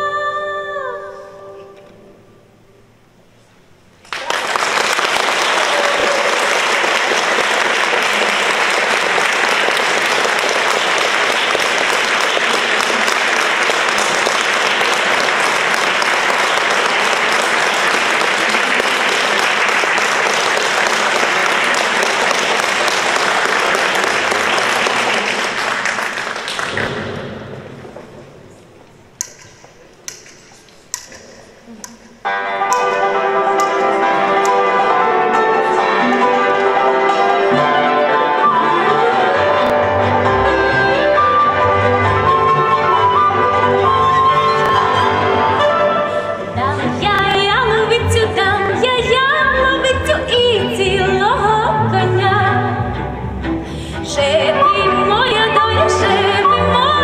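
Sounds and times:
audience applause: 4.0 - 27.9
instrumental ensemble playing: 32.2 - 50.9, 51.7 - 57.0.

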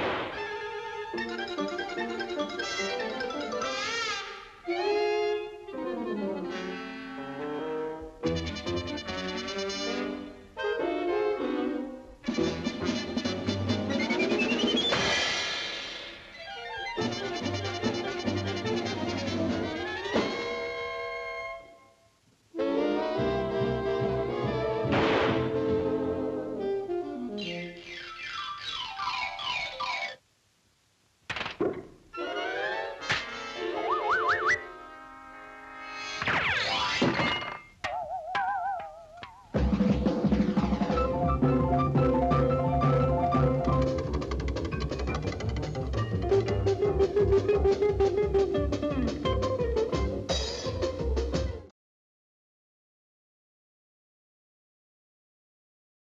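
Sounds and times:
orchestral cartoon music with brass: 0.3 - 15.7, 16.5 - 21.8, 22.6 - 28.1, 32.2 - 35.9, 39.6 - 44.1, 45.9 - 51.7
sharp orchestral hit: 24.8 - 25.9.

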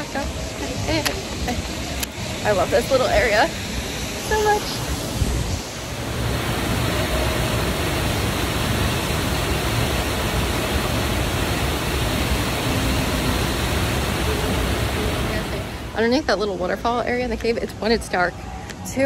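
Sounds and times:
waterfall rushing: 0.0 - 16.6.

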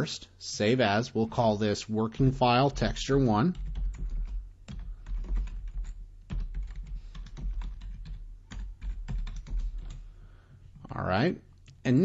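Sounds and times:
keyboard typing: 2.7 - 10.1.

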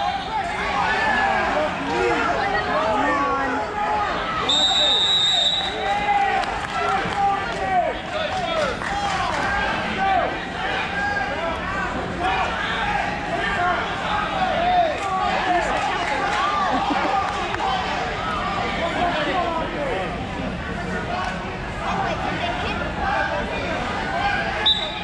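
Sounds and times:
spectators shouting and cheering: 0.0 - 25.0.

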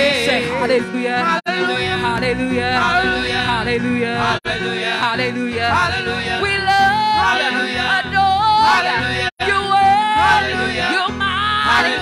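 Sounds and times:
group singing gospel song: 0.0 - 12.0
keyboard accompaniment: 0.0 - 12.0.

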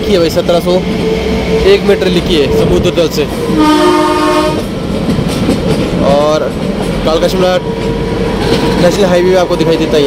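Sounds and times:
moving train noise: 0.0 - 10.0
train horn blast: 2.7 - 4.7.

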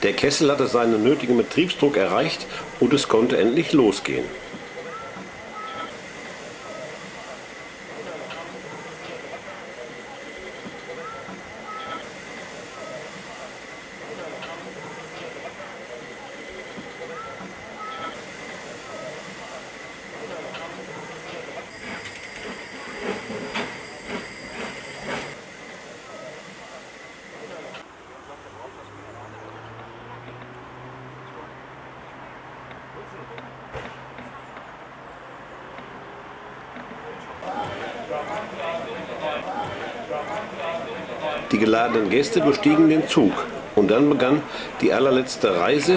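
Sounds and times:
steam locomotive hissing: 0.0 - 27.9, 37.4 - 45.9.

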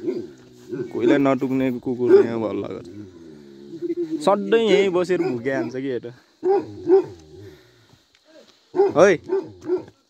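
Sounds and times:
dog barking: 0.0 - 1.2, 2.1 - 2.4, 5.2 - 5.8, 6.4 - 7.2, 8.7 - 10.0.

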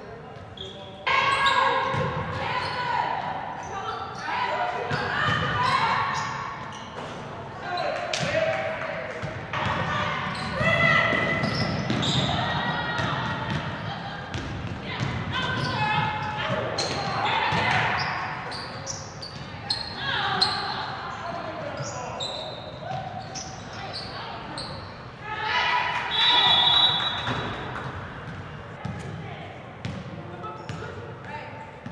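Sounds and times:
sneakers squeaking: 0.0 - 8.5, 9.1 - 31.9
people calling out: 25.2 - 27.5.

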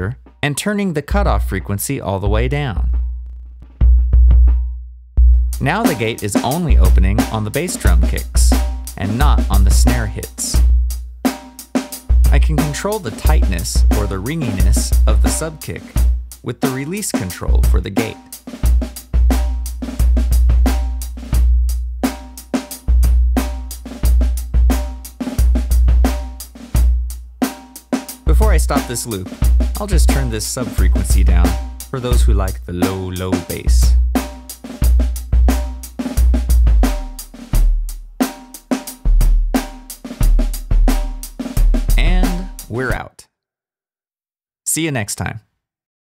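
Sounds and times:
acoustic drum loop: 0.0 - 43.2
deep sub-bass: 1.2 - 5.8, 12.1 - 12.6, 13.2 - 16.2, 28.3 - 28.9, 29.6 - 32.8, 36.2 - 37.9, 41.7 - 42.9
sub-bass tone: 2.2 - 5.7, 36.5 - 37.2, 41.9 - 42.9.

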